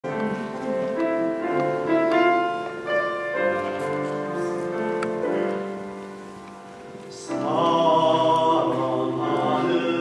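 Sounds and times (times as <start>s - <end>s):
piano accompaniment: 0.0s - 10.0s.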